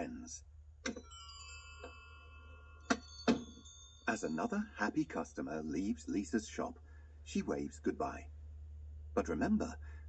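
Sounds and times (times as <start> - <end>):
shop door bell ringing: 0.9 - 5.2.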